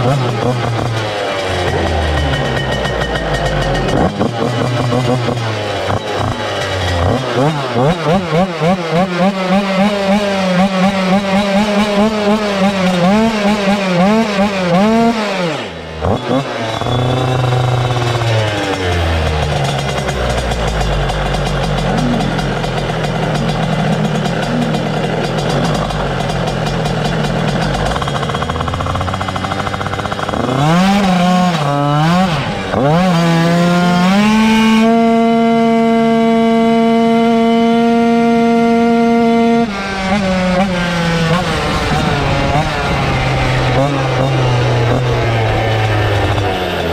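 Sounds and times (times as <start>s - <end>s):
two-stroke motorcycle engine revving: 0.0s - 46.9s.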